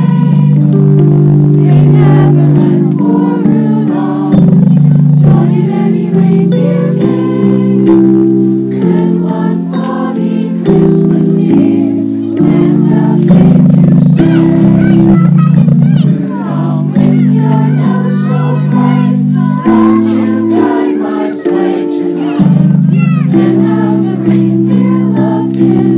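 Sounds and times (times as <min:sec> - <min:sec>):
choir singing a carol: 0:00.0 - 0:25.9.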